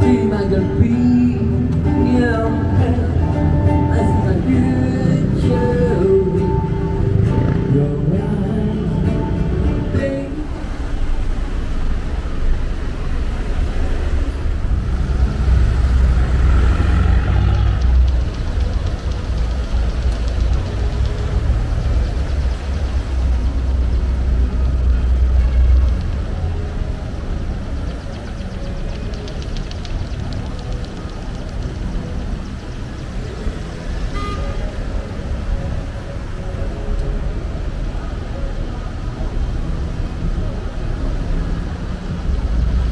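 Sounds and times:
cars driving past: 0.0s - 42.9s.

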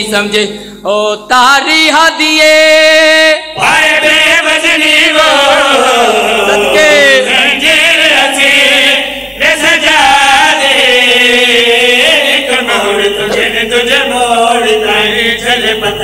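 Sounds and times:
men chanting into microphones: 0.0s - 16.0s.

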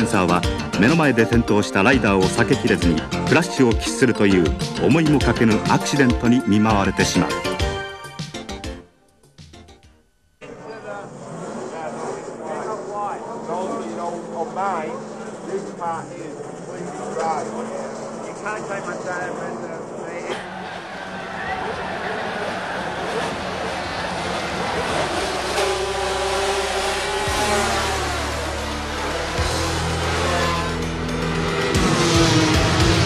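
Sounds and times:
voices: 10.4s - 27.2s
motorcycle engines: 10.4s - 33.0s.

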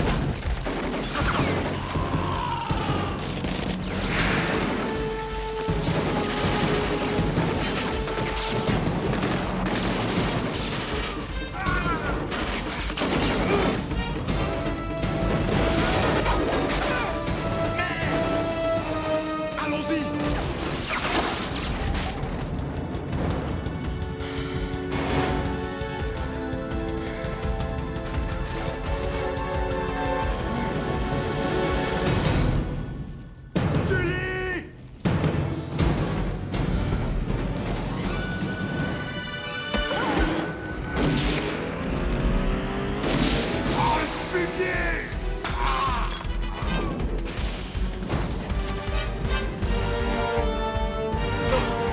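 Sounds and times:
booms and crashing impacts: 0.0s - 19.3s, 20.1s - 26.3s, 34.8s - 39.1s
dramatic film score: 0.0s - 51.9s
low rumble of fire and debris: 20.4s - 29.0s.

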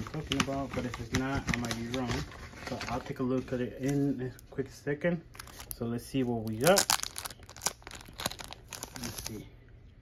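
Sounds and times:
plastic bag crinkling: 5.3s - 9.4s.

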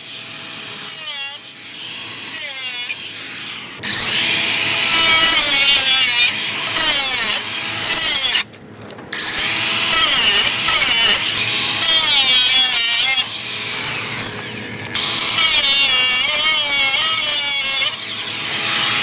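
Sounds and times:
angle grinder cutting steel: 0.0s - 8.5s, 9.2s - 19.0s.

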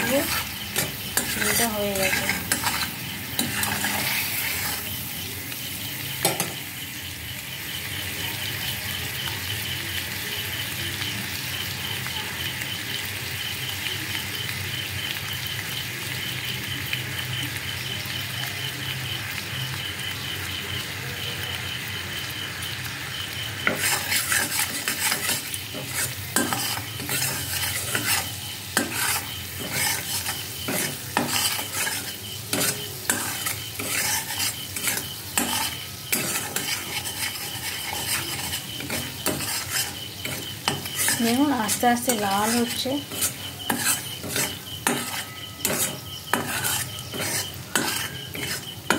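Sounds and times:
metal spatula scraping pan: 0.0s - 6.6s, 23.6s - 48.9s
syrup bubbling and sizzling: 0.0s - 48.9s.

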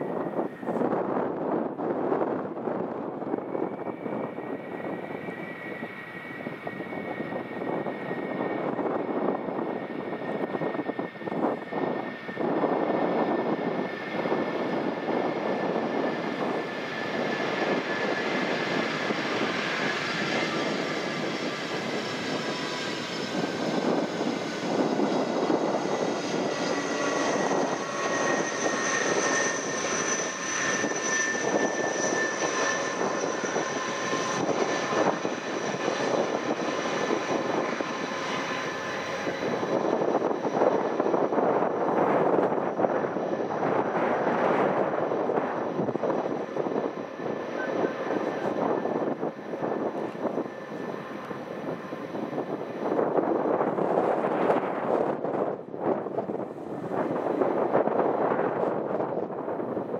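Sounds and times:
jet engines running: 0.0s - 59.9s
high whining tones: 3.3s - 53.0s.

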